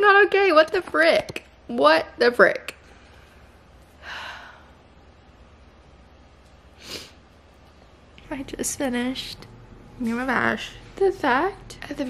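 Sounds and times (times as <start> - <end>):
low room hum: 0.0 - 12.0
woman breathing: 2.8 - 5.0, 6.7 - 7.2.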